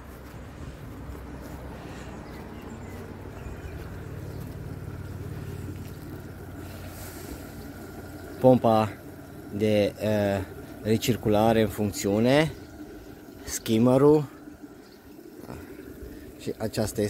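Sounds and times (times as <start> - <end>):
pool pump humming: 0.0 - 17.0
water jet churning water: 0.0 - 17.0.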